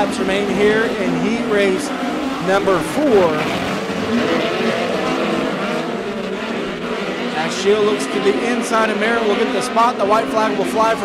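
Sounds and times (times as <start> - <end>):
race car engines at speed: 0.0 - 11.0.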